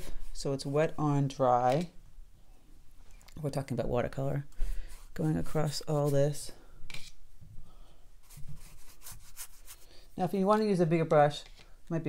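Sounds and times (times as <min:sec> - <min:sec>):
brush scratching on paper: 0:04.8 - 0:06.4, 0:08.2 - 0:10.0.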